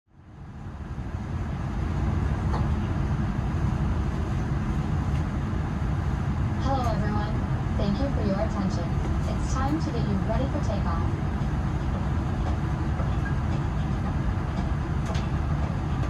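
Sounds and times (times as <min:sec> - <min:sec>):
airplane cabin low rumble: 0:00.1 - 0:16.0
faint announcement voice: 0:06.6 - 0:11.4.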